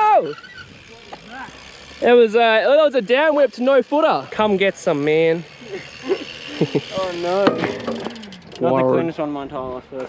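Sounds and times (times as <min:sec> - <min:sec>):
person shouting yeah: 0:00.0 - 0:00.4, 0:01.2 - 0:01.6.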